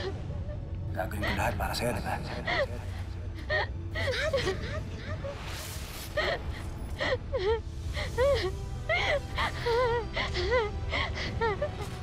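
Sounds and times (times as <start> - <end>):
woman crying and sobbing: 0.0 - 12.0.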